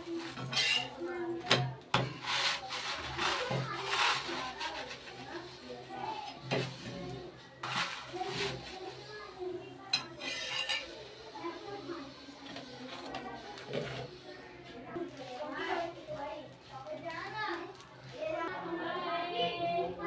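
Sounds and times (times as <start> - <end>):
spatula scraping iron griddle: 0.0 - 11.0, 12.4 - 14.1.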